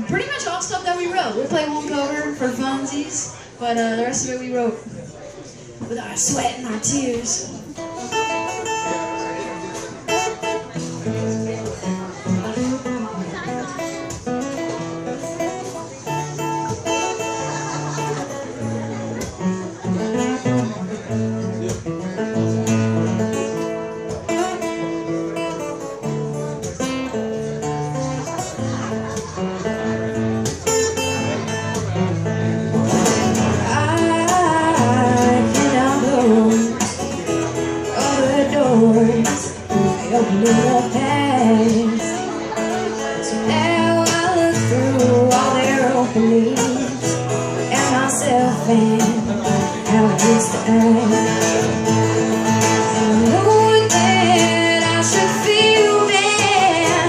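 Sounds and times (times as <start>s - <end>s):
acoustic guitar chords: 5.8s - 57.0s
person singing: 47.7s - 51.7s, 52.8s - 57.0s.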